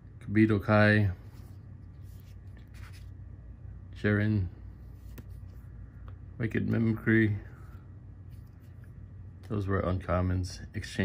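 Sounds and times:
faint card rustles: 1.2 - 3.2, 4.8 - 6.2, 7.6 - 9.6
trading cards sliding and rubbing: 1.2 - 3.2, 4.8 - 5.8, 7.6 - 9.0.

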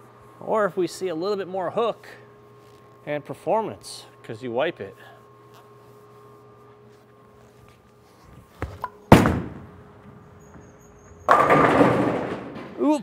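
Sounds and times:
soft footsteps: 5.5 - 9.0
bowling ball rolling: 8.6 - 13.0
bowling ball thudding on lane: 8.7 - 9.8, 11.2 - 12.8
bowling pins crashing: 9.1 - 9.8, 11.1 - 13.0.

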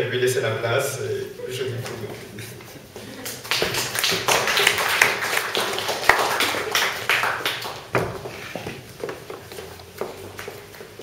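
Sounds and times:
audience clapping: 3.1 - 8.3.

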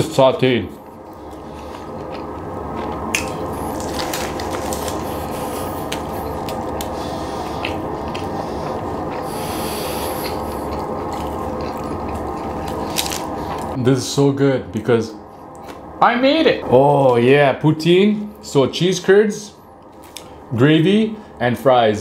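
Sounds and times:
person chewing food: 1.1 - 13.8.

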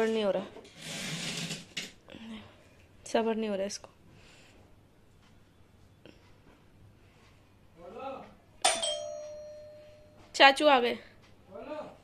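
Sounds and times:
doorbell ding: 8.6 - 10.3.

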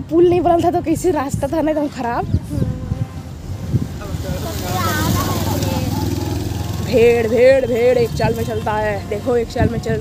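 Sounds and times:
vehicle engine running: 3.4 - 10.0.

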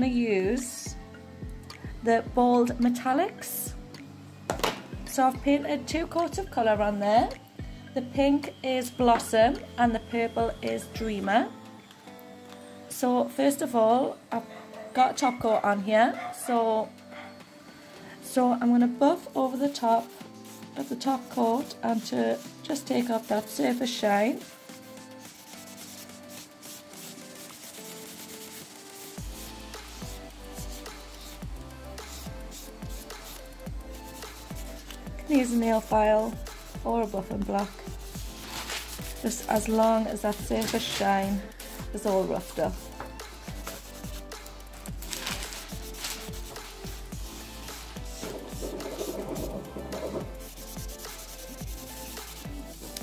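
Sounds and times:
background music with bass: 0.0 - 3.0, 29.1 - 53.0
foam block rubbing a nail: 24.4 - 44.6, 45.2 - 53.0
buffing block rubbing nail: 45.5 - 53.0.

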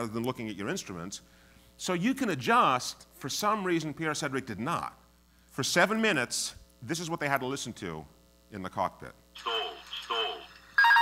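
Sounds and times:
synthetic voice calling stall: 9.4 - 11.0.

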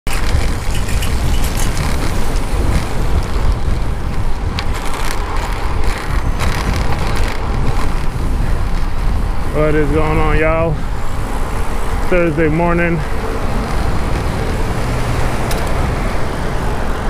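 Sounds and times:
road and tyre noise: 0.0 - 17.0
wind buffeting camera: 0.0 - 17.0.

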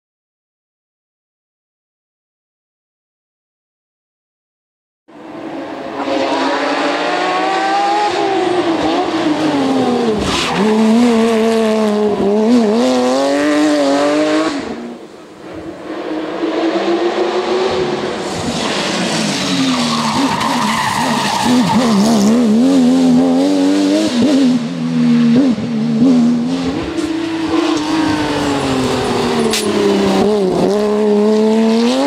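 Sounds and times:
rally car engine revving hard: 5.7 - 15.0, 16.2 - 32.0.

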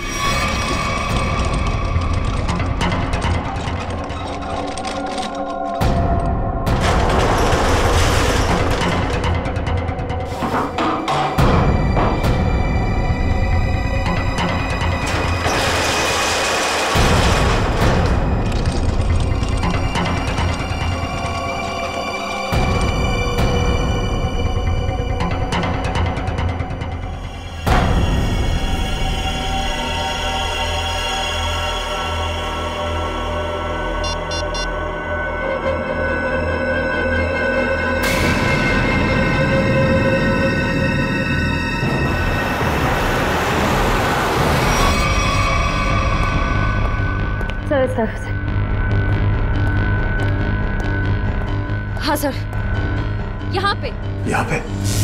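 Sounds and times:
rushing suspenseful score: 0.0 - 55.0
tense background music: 0.0 - 55.0.

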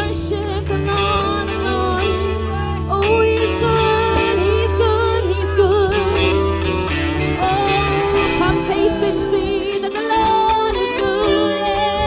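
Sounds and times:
person singing a worship song: 0.0 - 6.5, 7.2 - 12.0
instrumental accompaniment: 0.0 - 12.0.

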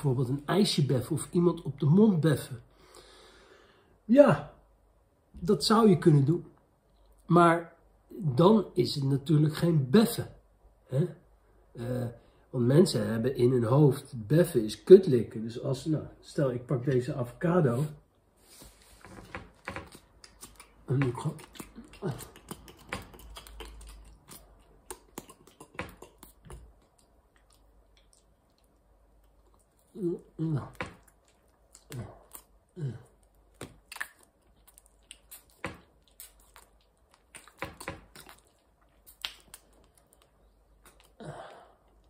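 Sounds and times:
wet mouth clicks and smacks: 19.6 - 30.0, 30.6 - 32.6, 33.2 - 41.2.

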